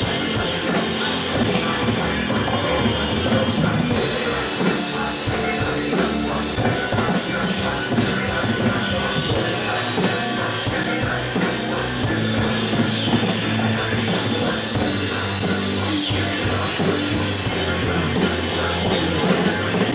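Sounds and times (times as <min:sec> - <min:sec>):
rock music with drum kit: 0:00.0 - 0:19.9.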